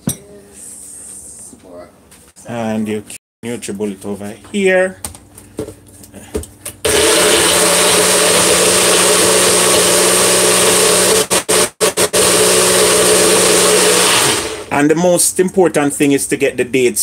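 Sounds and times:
blender running: 6.8s - 14.7s.

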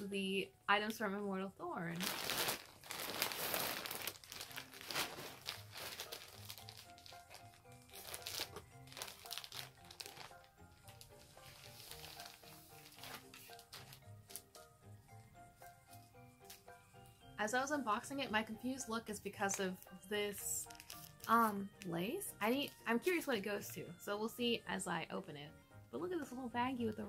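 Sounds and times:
quiet background music: 0.0s - 27.0s
plastic package crinkling: 1.9s - 14.6s, 20.6s - 21.9s.

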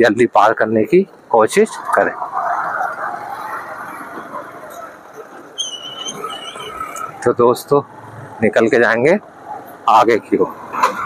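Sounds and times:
wind and road noise of motorbike: 1.1s - 11.0s
high wavering whistle tone: 5.6s - 7.2s.

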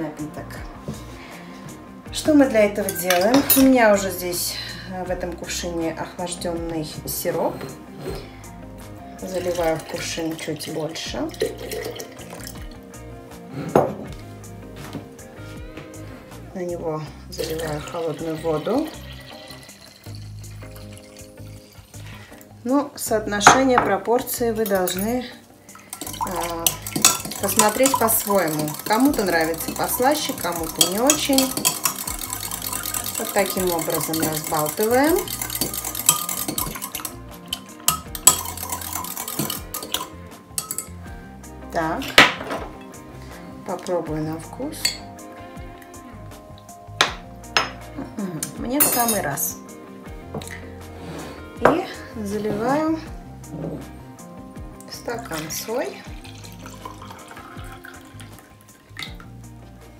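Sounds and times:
background music: 0.0s - 59.9s
spoon stirring in ceramic jug: 2.4s - 3.8s, 9.2s - 12.6s, 17.4s - 22.2s, 24.6s - 41.0s, 44.8s - 45.1s, 48.4s - 49.4s, 54.8s - 58.4s
spoon clinking against jug: 2.8s - 3.8s, 17.4s - 22.0s, 24.6s - 25.2s, 25.8s - 41.0s, 44.8s - 45.1s, 48.4s - 49.3s
ceramic jug knocking on wood: 13.8s - 14.2s.

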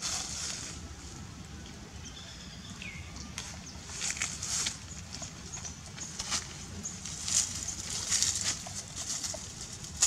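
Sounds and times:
dry leaves crackling and rustling: 0.0s - 1.4s, 3.3s - 10.0s.

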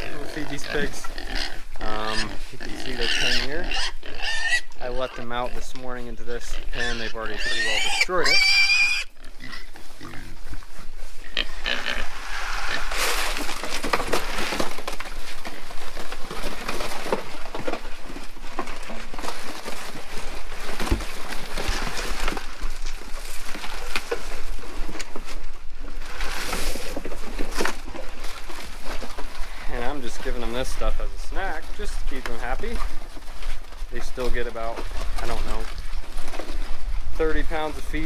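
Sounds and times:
pigs grunting and squealing: 0.0s - 10.4s, 11.2s - 13.4s.

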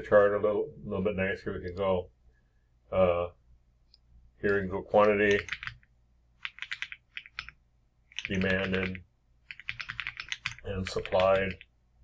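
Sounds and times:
typing on computer keyboard: 5.0s - 11.7s.

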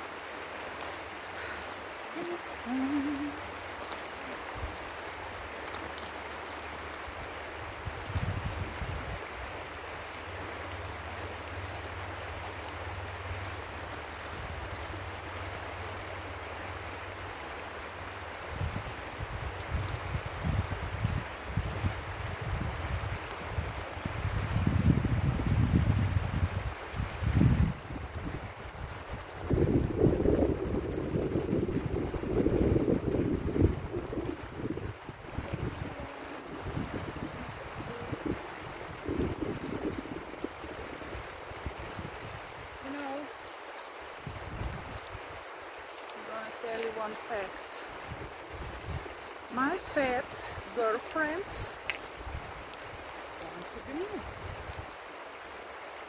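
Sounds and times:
river flowing over gravel: 0.0s - 56.0s
wind buffeting microphone: 6.7s - 9.7s, 18.4s - 43.2s, 44.1s - 45.5s, 46.5s - 55.0s.

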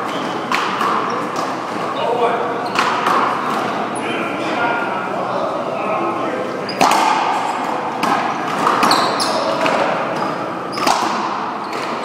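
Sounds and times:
ball hitting wall and floor: 0.0s - 1.7s, 2.7s - 3.8s, 6.7s - 12.0s
racquet hitting ball: 0.0s - 1.8s, 2.7s - 3.8s, 6.7s - 12.0s.

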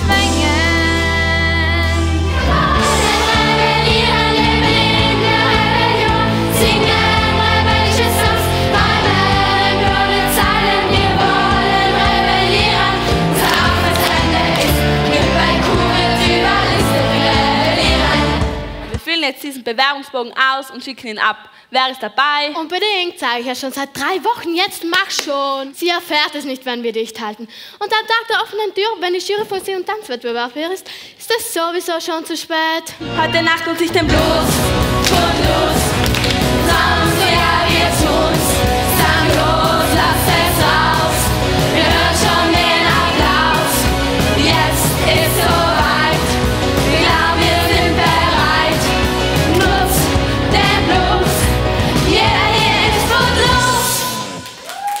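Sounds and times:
live band playing: 0.0s - 19.0s, 33.0s - 54.6s
girls singing together: 2.4s - 18.5s, 34.1s - 54.4s.

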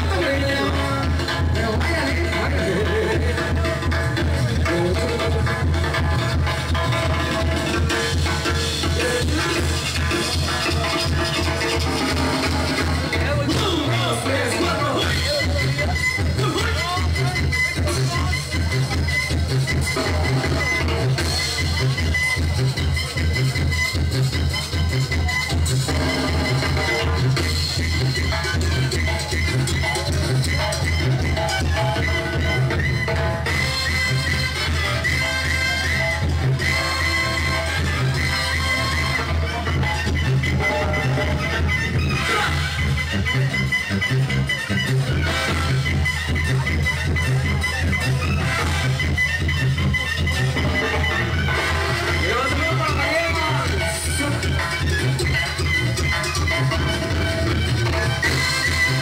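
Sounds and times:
brass band playing: 0.0s - 59.0s
sousaphone bass line: 0.0s - 59.0s.

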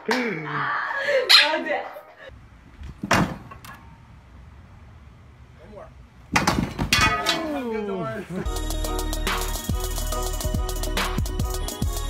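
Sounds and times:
metal bar clattering down: 6.4s - 7.6s
person falling onto concrete: 6.4s - 7.6s.

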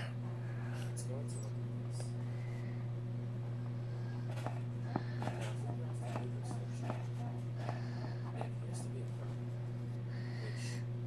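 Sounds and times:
low electrical hum: 0.0s - 11.0s
marker scratching on fabric: 4.3s - 8.6s.

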